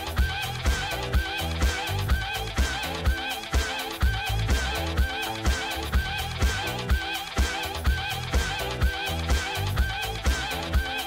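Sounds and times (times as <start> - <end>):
electronic music with kick drum: 0.0 - 11.0.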